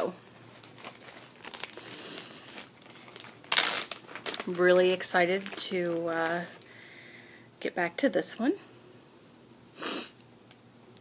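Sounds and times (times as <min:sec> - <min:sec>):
material rustling and crinkling: 0:00.0 - 0:06.7.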